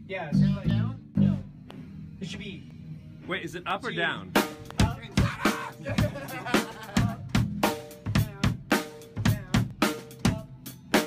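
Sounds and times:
drum kit playing a steady beat: 4.3 - 11.0.

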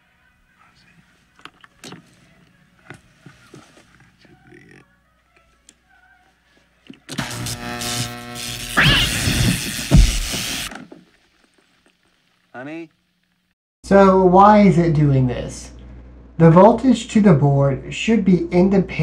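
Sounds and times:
faint clicks and rustles: 0.7 - 7.1
loud electrical hum: 7.1 - 10.7, 13.9 - 19.0.

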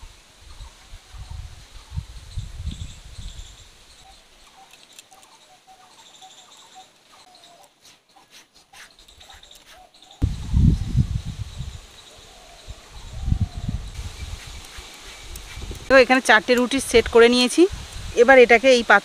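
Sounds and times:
faint bird chirps: 0.5 - 15.6.

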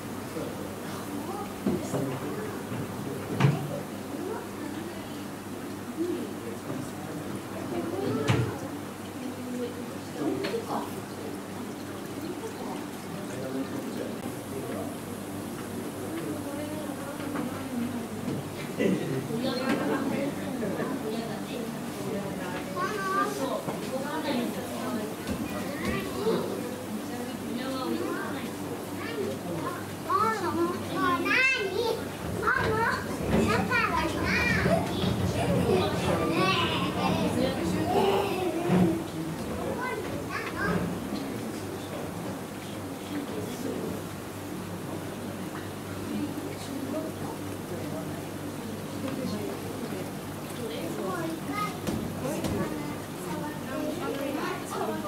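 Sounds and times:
murmur of people talking: 0.0 - 55.0
children calling out and chattering: 0.8 - 2.8, 7.5 - 9.5, 16.0 - 41.8, 48.3 - 55.0.

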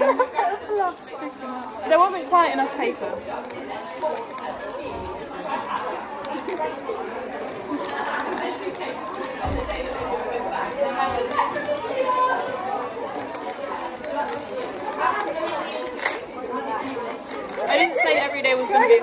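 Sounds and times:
indistinct chatter: 0.0 - 19.0
wrapping paper crinkling: 0.1 - 19.0.

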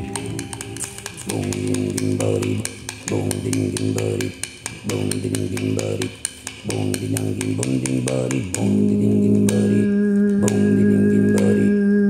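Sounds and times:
wooden sticks clicking: 0.0 - 11.8
overtone singing drone: 0.0 - 12.0.

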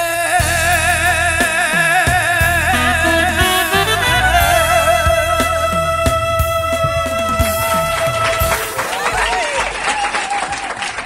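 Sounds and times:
audience clapping: 7.4 - 11.0.

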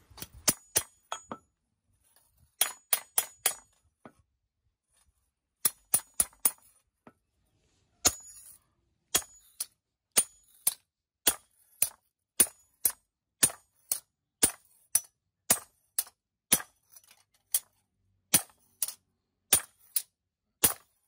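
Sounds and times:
hammer striking blade on anvil: 8.0 - 16.7.

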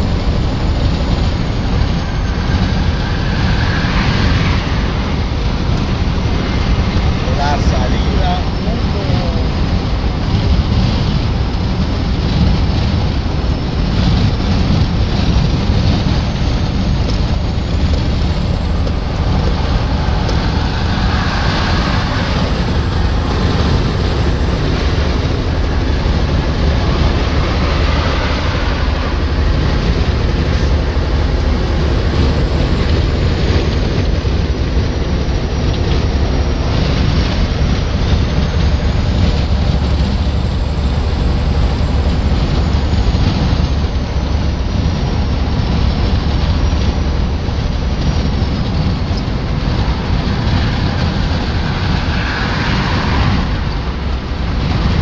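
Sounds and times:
tyre and drivetrain rumble: 0.0 - 55.0
wind buffeting microphone: 0.0 - 55.0
wind rushing: 0.0 - 55.0.

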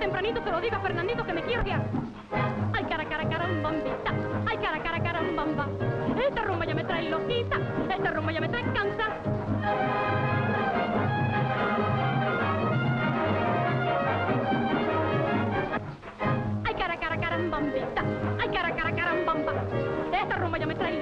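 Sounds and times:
dance band playing rumba: 0.0 - 21.0
woman singing: 2.8 - 9.2, 16.7 - 21.0.

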